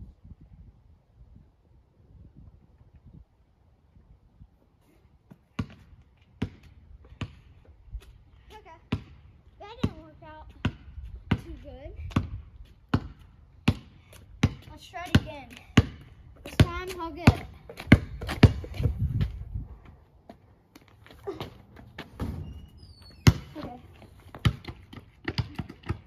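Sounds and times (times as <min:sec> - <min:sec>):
basketball bouncing on pavement: 0:05.3 - 0:19.6, 0:20.3 - 0:26.0.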